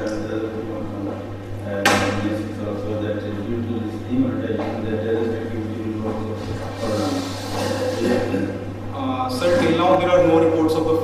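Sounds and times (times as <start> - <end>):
low electrical hum: 0.0 - 11.0
man hesitant voice sounds: 6.8 - 8.8.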